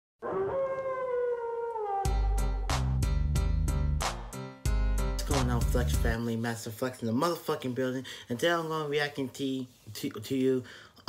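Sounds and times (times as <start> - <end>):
wolf howling: 0.2 - 2.5.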